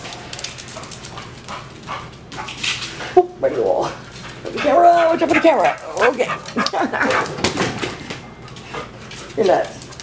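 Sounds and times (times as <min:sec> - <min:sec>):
dog claws scrabbling on tile floor: 0:00.0 - 0:03.1, 0:03.8 - 0:10.0.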